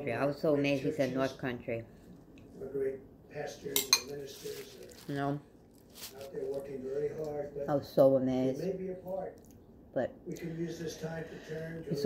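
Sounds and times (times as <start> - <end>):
spoon clinking against bowl: 3.8 - 4.2.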